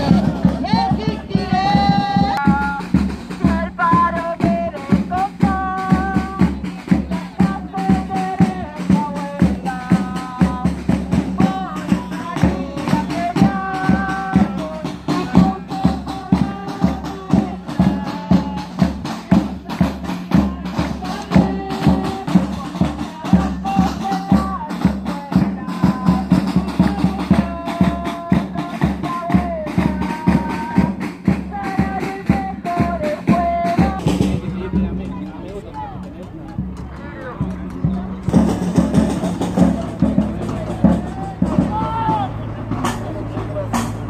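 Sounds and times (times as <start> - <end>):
drums beaten in fast rhythm: 0.0 - 44.0
outdoor voices: 0.0 - 44.0.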